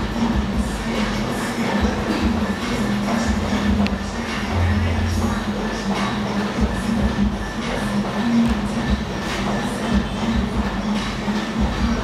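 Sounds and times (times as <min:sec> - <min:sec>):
mechanical hum with pulsing drone: 0:00.0 - 0:12.0
noisy din: 0:00.0 - 0:12.0.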